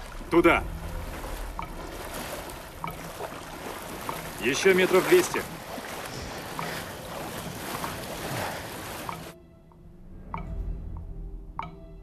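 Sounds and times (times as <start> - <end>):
legs wading through water: 0.0 - 9.4.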